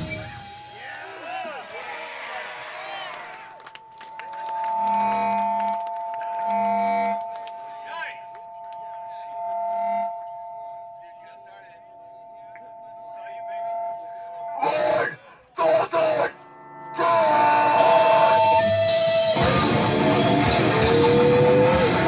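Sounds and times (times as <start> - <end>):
electric guitar amp feedback: 4.7 - 15.2, 16.1 - 22.0
low guitar notes: 16.4 - 22.0.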